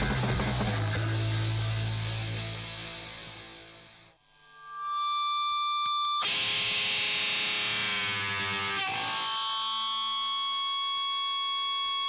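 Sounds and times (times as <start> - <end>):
electric guitar feedback: 0.0 - 12.0.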